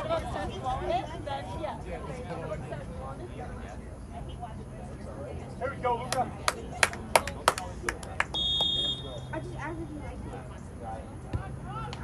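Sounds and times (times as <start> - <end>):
voices: 0.0 - 12.0
hand claps: 6.1 - 8.7
referee's whistle: 8.3 - 9.3.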